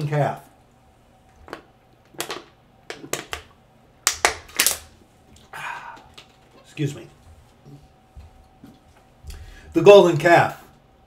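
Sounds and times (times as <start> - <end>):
breathy rush: 5.5 - 6.2.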